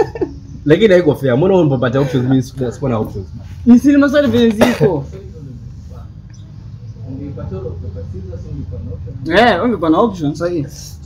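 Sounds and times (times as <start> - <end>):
men talking quietly: 0.5 - 11.0.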